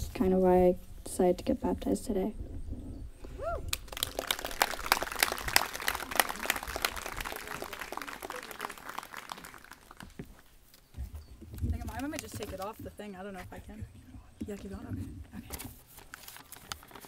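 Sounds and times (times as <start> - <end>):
small audience applauding: 3.7 - 10.3.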